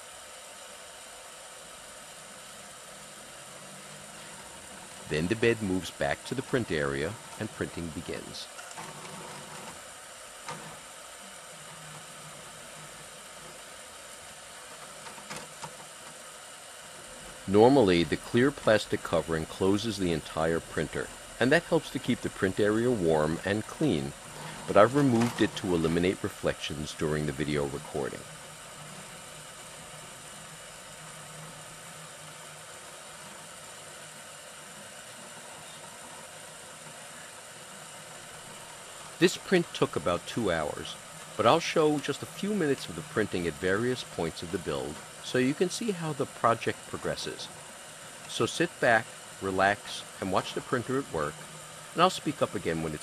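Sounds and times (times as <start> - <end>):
printer motors humming: 0.0 - 53.0.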